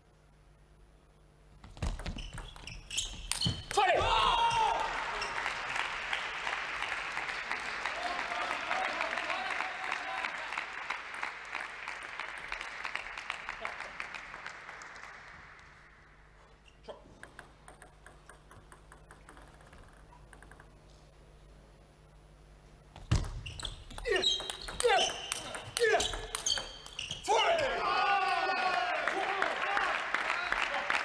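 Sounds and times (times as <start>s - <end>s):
person shouting: 3.7s - 4.9s
crowd applause and cheering: 4.0s - 16.6s, 27.4s - 31.0s
table tennis ball clicking: 16.9s - 21.0s, 23.9s - 27.1s.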